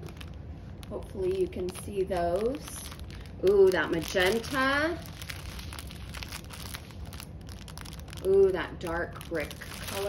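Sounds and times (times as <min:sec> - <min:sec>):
plastic wrap crinkling: 0:00.0 - 0:10.0.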